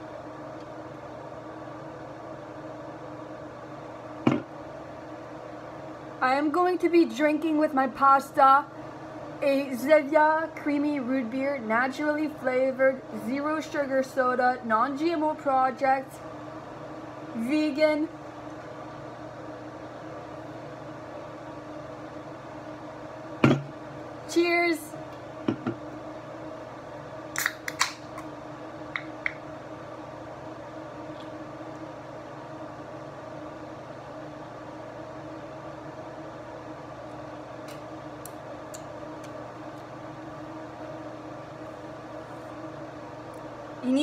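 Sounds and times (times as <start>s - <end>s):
steady even hum: 0.0s - 44.0s.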